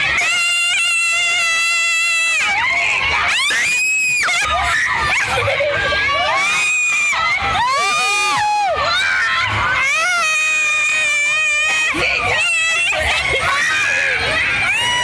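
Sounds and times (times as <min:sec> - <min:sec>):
women screaming on a ride: 0:00.0 - 0:15.0
laughter: 0:05.2 - 0:06.4.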